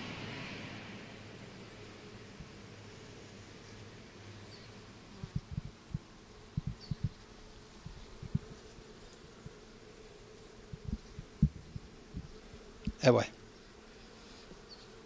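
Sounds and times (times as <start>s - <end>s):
bees buzzing: 0.7s - 15.0s
short low bumps: 5.2s - 7.2s, 7.8s - 8.7s, 10.7s - 13.0s.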